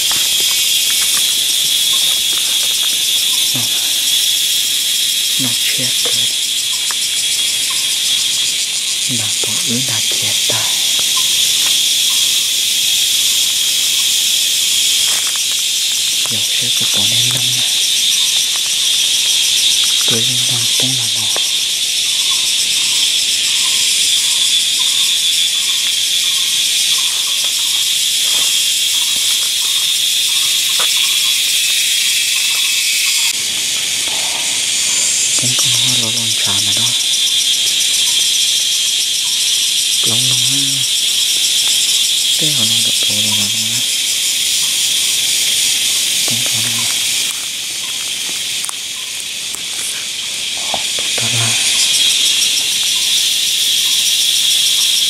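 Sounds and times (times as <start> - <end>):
low voice-like calls: 0.0 - 15.2, 15.9 - 22.9, 34.1 - 37.2, 40.0 - 41.0, 42.4 - 44.0, 46.2 - 47.3, 49.7 - 53.2
insect chorus shrilling: 0.0 - 55.0.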